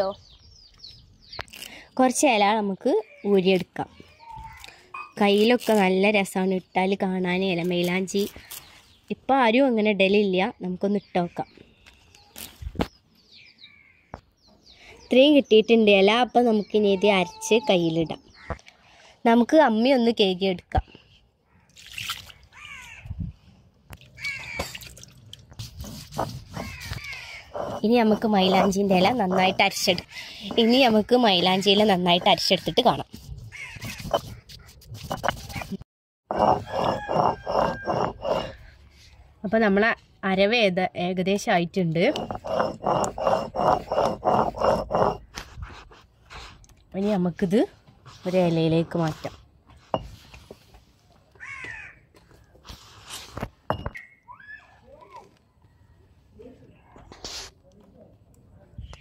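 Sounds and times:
water splashing and dripping: 0:21.7 - 0:22.6, 0:24.0 - 0:25.8
crows cawing: 0:22.5 - 0:23.0, 0:51.4 - 0:52.0.

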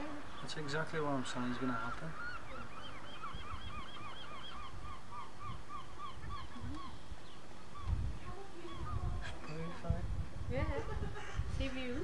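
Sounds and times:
bird calling repeated notes: 0:01.7 - 0:08.0.

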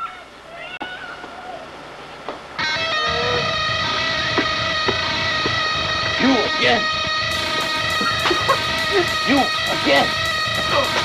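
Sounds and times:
electric guitar ringing chord: 0:02.6 - 0:11.0
soundtrack music: 0:02.6 - 0:11.0.

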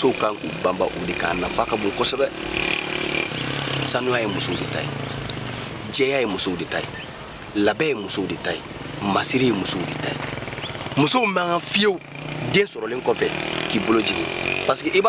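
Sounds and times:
man talking: 0:00.0 - 0:02.3, 0:03.8 - 0:04.9, 0:05.8 - 0:10.2, 0:11.0 - 0:15.0
insects chirring: 0:00.0 - 0:15.0.

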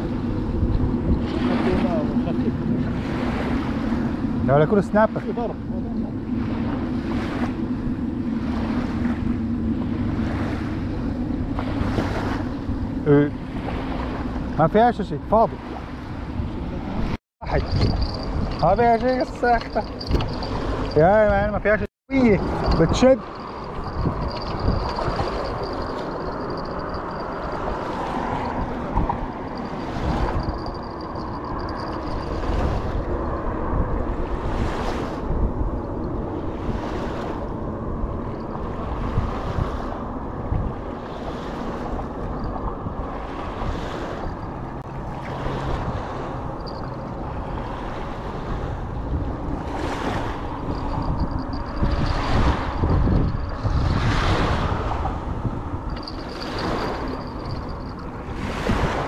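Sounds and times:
wind buffeting microphone: 0:00.0 - 0:59.0
small waves washing on beach: 0:01.2 - 0:07.6, 0:11.6 - 0:59.0.

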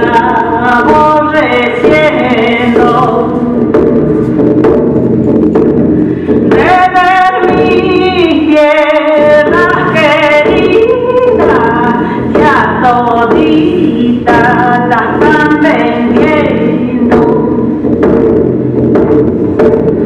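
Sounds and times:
woman singing: 0:00.0 - 0:03.7, 0:06.5 - 0:17.8
low accompaniment: 0:00.0 - 0:20.0.

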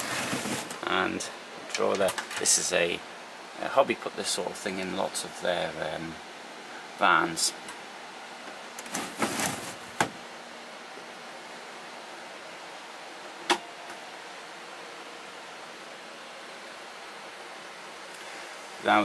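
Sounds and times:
steady background hiss: 0:00.0 - 0:19.0.

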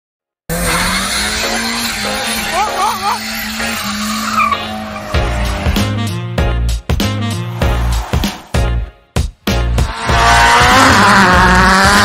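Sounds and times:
car engine at high revs: 0:00.5 - 0:06.0, 0:09.7 - 0:12.0
tyres squealing and skidding: 0:00.5 - 0:06.2, 0:07.0 - 0:08.8
music: 0:01.5 - 0:12.0.

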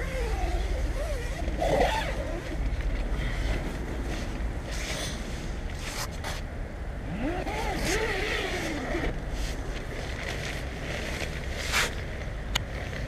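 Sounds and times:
tent zipper pulled open: 0:00.1 - 0:02.6, 0:07.1 - 0:12.0.

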